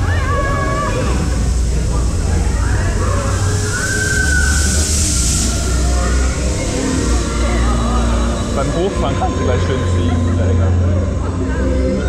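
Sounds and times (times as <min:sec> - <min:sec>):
coaster train rolling: 0:00.0 - 0:12.0
deep steady rumble: 0:00.0 - 0:12.0
faint voices: 0:00.0 - 0:12.0.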